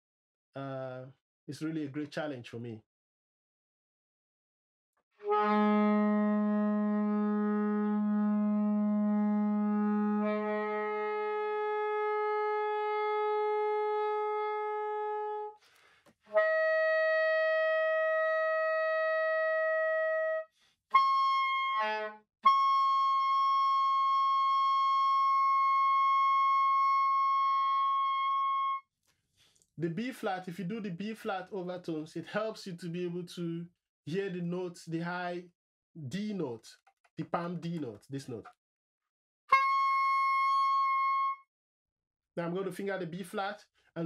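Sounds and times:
soprano saxophone notes: 5.2 - 15.6, 16.3 - 28.8, 39.5 - 41.4
breath: 15.6 - 16.2, 20.5 - 20.8, 29.1 - 29.7.

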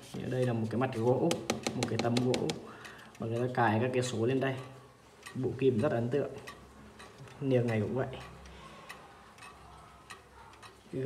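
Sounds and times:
pendulum wall clock ticking: 0.4 - 11.0.

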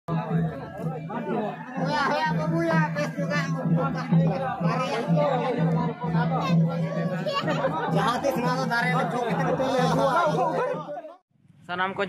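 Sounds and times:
low repeating beat: 0.1 - 10.8
several voices talking: 0.1 - 12.0.

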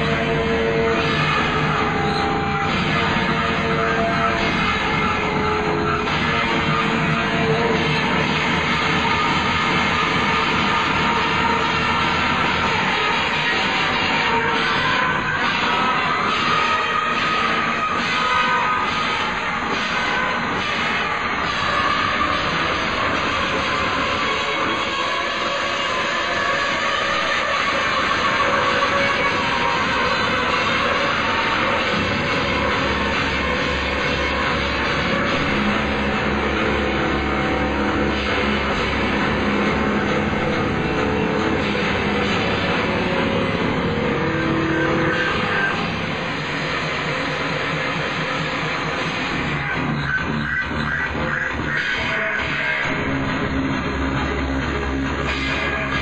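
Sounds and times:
deep bass: 18.7 - 56.0.

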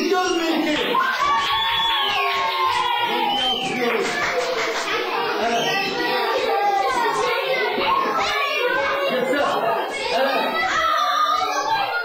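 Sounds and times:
young children talking: 0.0 - 12.0.

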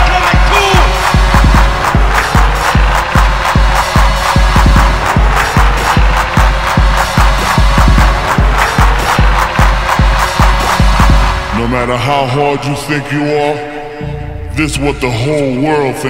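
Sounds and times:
fast kick drum beat: 0.0 - 11.8.

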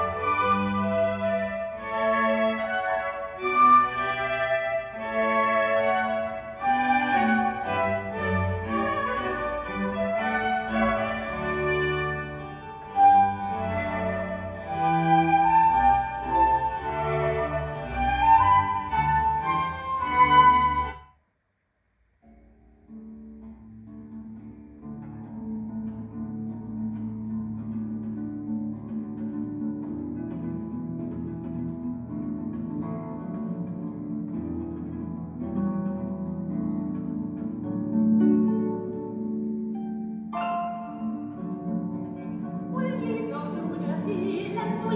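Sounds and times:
orchestral string music: 0.0 - 21.0, 23.3 - 44.9
quiet music with long notes: 0.0 - 21.0, 22.2 - 44.9.

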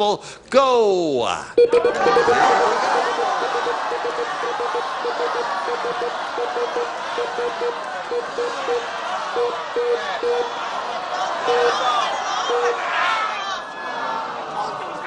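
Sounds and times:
prize wheel ticking: 1.6 - 10.5, 12.5 - 12.8
studio audience shouting and chattering: 1.6 - 15.0.

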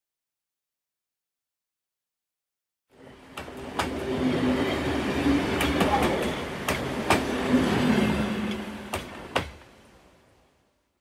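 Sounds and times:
train rumbling: 2.9 - 10.7
wheels clicking over rail joints: 5.5 - 7.4.

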